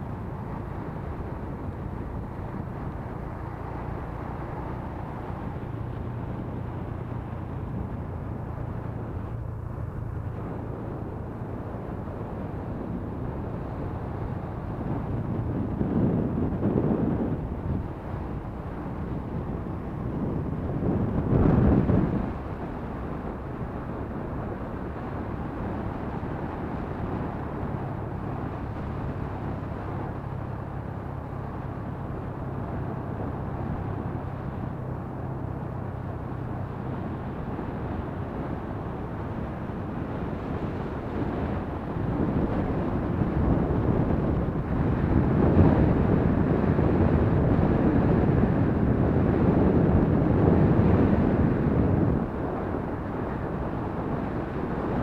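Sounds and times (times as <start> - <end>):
wind noise on microphone: 0.0 - 55.0.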